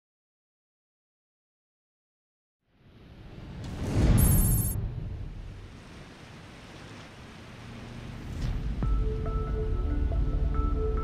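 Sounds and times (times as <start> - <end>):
ocean waves surging: 3.8 - 8.3
high electronic chatter: 4.2 - 4.8.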